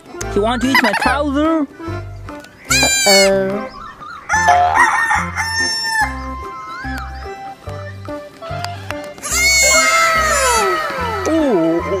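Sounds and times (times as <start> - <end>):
young goat bleating: 2.7 - 3.4, 9.2 - 11.2
background music with beat: 4.3 - 12.0.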